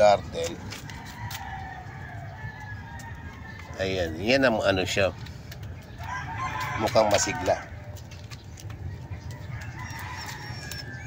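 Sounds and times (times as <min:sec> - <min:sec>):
faint distant bird calls: 0:00.0 - 0:11.0
low outdoor rumble: 0:00.0 - 0:11.0.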